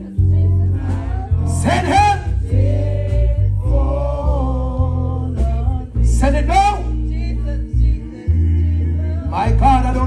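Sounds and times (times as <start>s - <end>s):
electric bass: 0.0s - 10.0s.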